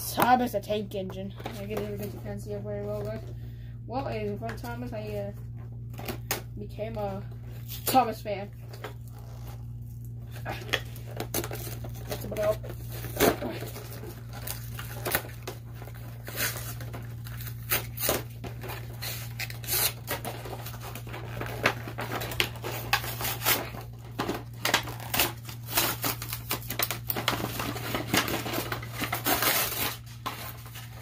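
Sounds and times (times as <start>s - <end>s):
packaging tearing and crinkling: 8.6s - 31.0s.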